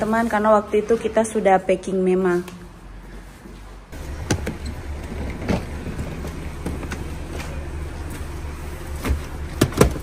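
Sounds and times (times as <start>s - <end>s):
car engine idling: 4.0s - 10.0s.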